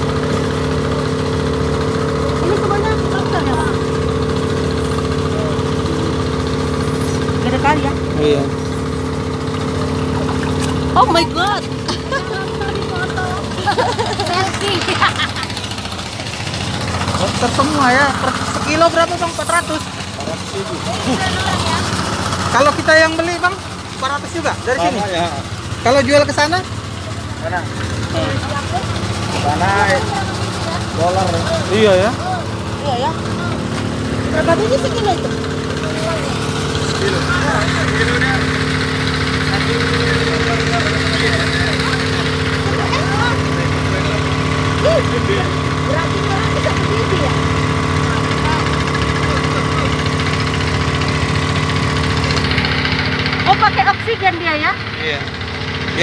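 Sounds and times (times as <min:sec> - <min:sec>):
engine humming: 0:00.0 - 0:56.0
motor idling: 0:00.0 - 0:56.0
indistinct voices talking: 0:00.7 - 0:56.0.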